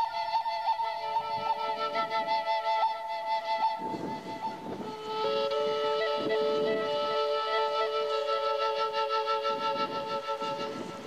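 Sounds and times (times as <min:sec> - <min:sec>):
flute holding a high note: 0:00.0 - 0:11.0
wind noise on microphone: 0:00.0 - 0:11.0.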